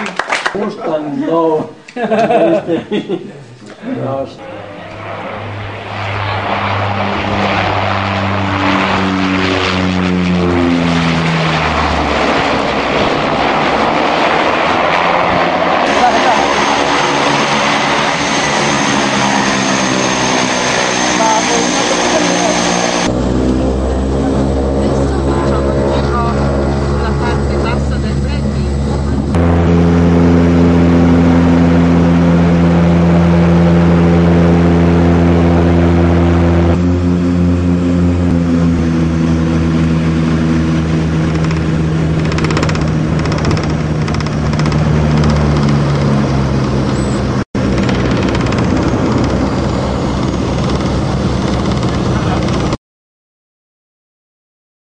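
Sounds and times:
propeller engines droning: 0:00.0 - 0:52.8.

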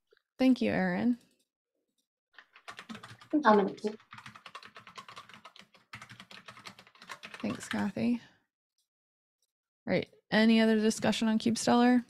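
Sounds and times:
computer keyboard typing: 0:02.4 - 0:08.1.

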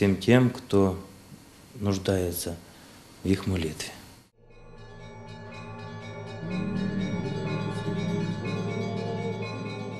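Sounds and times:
church bells ringing a peal: 0:04.7 - 0:09.9.

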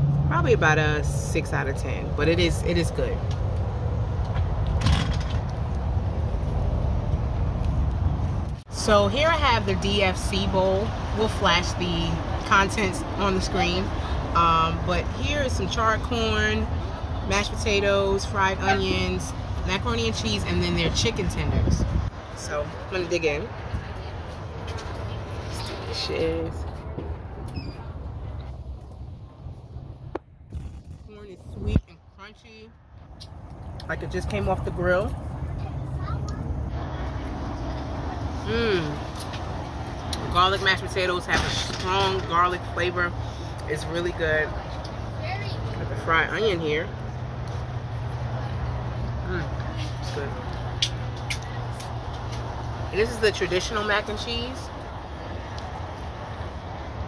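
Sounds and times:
passing traffic: 0:00.0 - 0:57.0
wind on microphone: 0:20.8 - 0:22.2.

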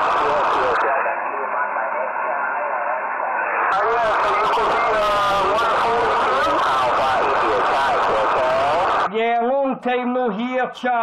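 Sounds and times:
man's voice over radio: 0:00.0 - 0:11.0
radio hiss: 0:00.0 - 0:11.0.

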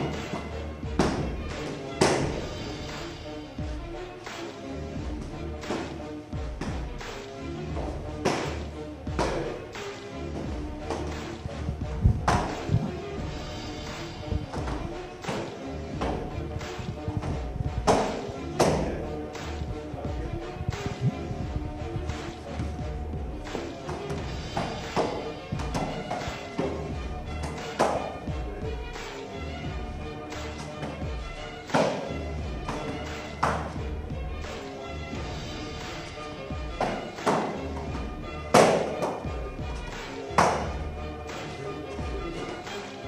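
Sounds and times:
background music: 0:00.0 - 0:43.0.

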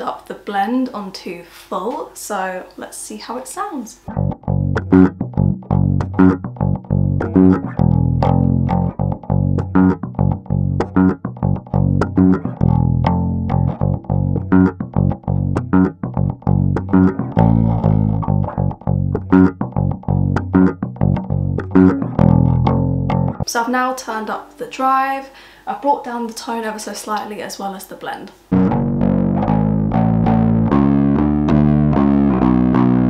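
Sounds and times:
overdriven electric bass line: 0:04.1 - 0:23.5, 0:28.5 - 0:33.0.

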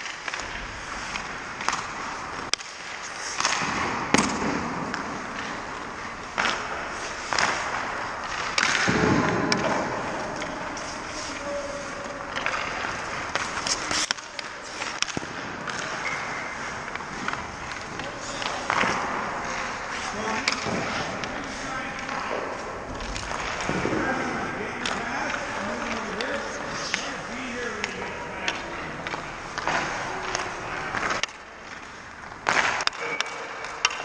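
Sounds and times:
puck hitting goalie gear: 0:00.0 - 0:10.8, 0:12.2 - 0:34.0
stick striking puck: 0:00.0 - 0:11.4, 0:12.0 - 0:34.0
skates scraping on ice: 0:00.0 - 0:34.0.

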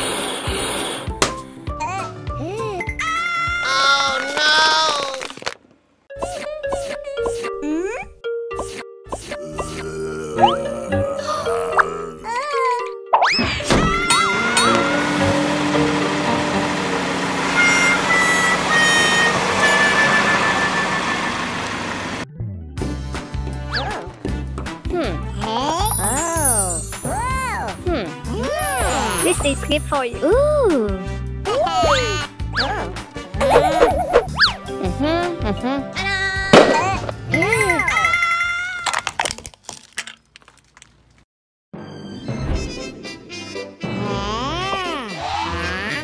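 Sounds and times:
music: 0:00.0 - 0:03.9, 0:06.1 - 0:21.3, 0:22.2 - 0:38.0, 0:41.7 - 0:46.0
plastic toy cracking: 0:04.1 - 0:05.7, 0:38.8 - 0:41.2
car engine running: 0:14.9 - 0:22.2
short high tones: 0:17.5 - 0:21.6
squeaky cartoon voices: 0:25.4 - 0:29.6, 0:31.5 - 0:33.8, 0:44.2 - 0:46.0.

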